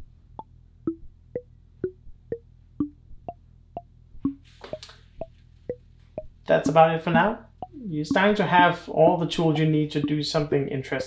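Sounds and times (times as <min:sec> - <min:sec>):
wood-block-like synth notes: 0:00.0 - 0:10.5.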